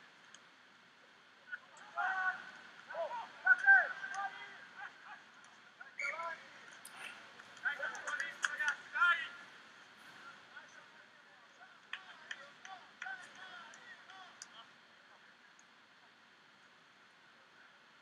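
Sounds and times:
open-air hiss: 0.0s - 18.0s
voices shouting and calling out: 1.3s - 15.4s.

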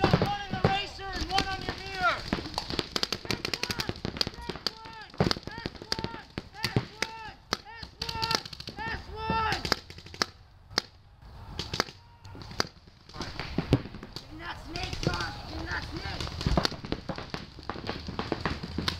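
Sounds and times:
paintball markers firing pops: 0.0s - 8.8s, 9.4s - 11.0s, 11.6s - 18.9s
players shouting short calls: 0.0s - 9.8s, 10.7s - 13.6s, 14.2s - 16.4s.

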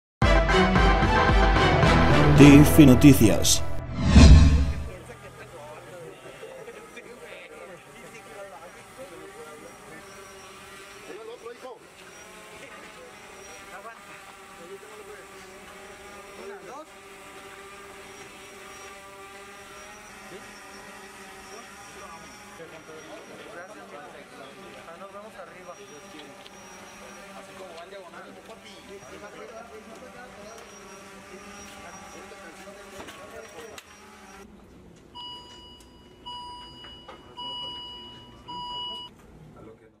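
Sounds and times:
medical equipment high beeps: 35.2s - 39.1s.

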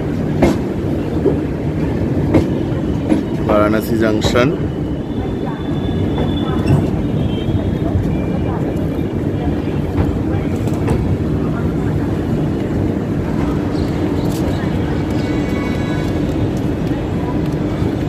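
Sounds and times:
train wheels rumbling on track: 0.0s - 18.0s.

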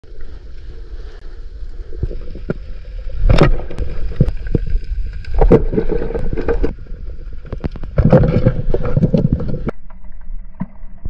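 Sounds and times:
underwater rumble of moving water: 0.0s - 11.0s.

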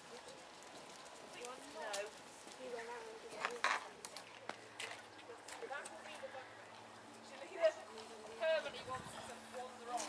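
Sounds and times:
horse hooves clip-clopping: 0.0s - 10.0s.

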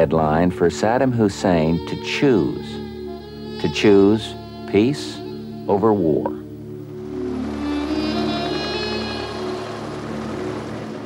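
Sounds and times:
helicopters flying: 3.9s - 11.0s.

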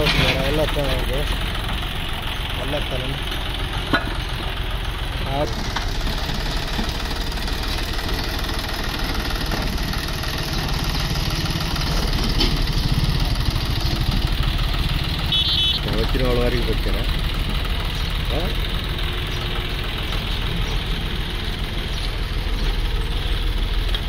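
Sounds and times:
tractor diesel engine running: 0.0s - 24.0s.

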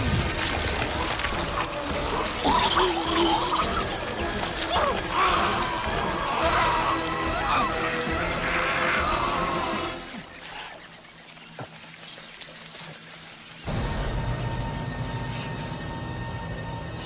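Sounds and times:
low music drone: 0.0s - 10.9s, 13.5s - 17.0s
wet squelching sounds: 0.0s - 13.7s
tense music score: 0.0s - 17.0s.

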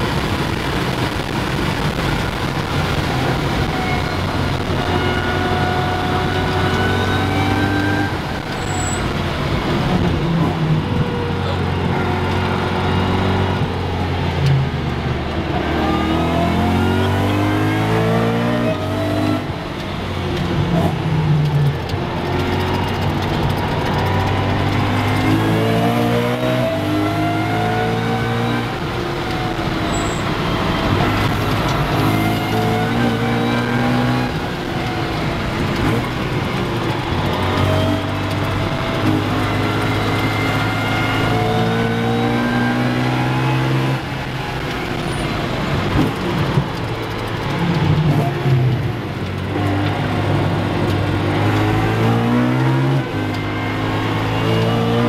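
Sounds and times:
car engine revving through gears: 0.0s - 55.0s.

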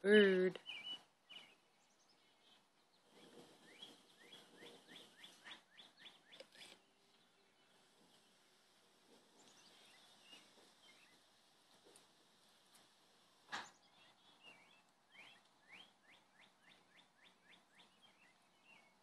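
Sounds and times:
bird singing rising notes: 0.6s - 2.6s, 13.6s - 19.0s
faint bird chirps: 0.6s - 8.6s, 9.3s - 11.3s, 13.5s - 19.0s.

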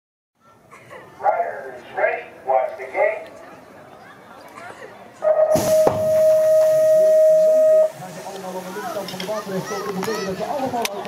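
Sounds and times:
electronic start tone: 5.4s - 7.9s
gate dropping with clank: 5.5s - 6.8s
hiss of noise: 5.5s - 9.7s.

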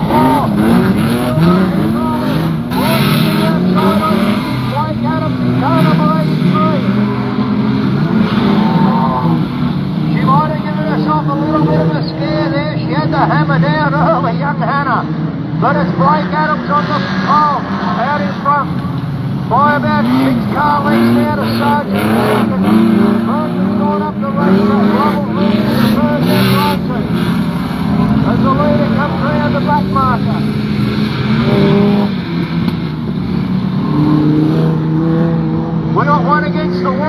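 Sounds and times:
race car engines revving: 0.0s - 37.0s.

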